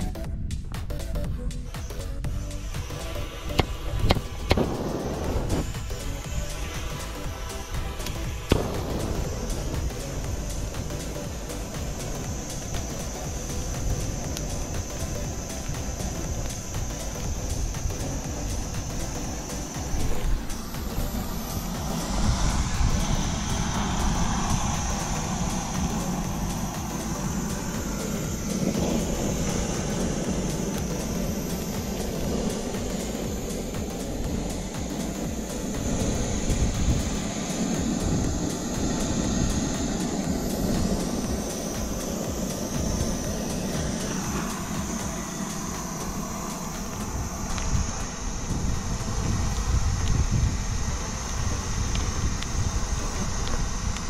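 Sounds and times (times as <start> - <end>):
torch burning with steady roar: 0.0 - 54.0.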